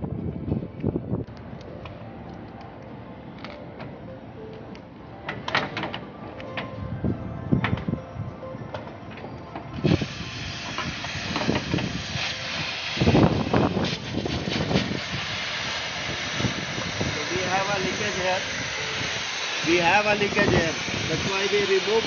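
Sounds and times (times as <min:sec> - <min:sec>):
steady hiss: 0:09.8 - 0:22.0.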